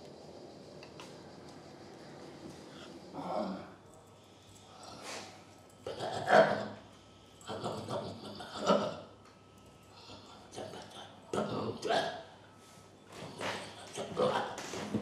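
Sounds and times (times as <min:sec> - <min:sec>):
man making wordless vocal sounds: 0:07.4 - 0:09.1, 0:10.0 - 0:12.3, 0:13.4 - 0:15.0.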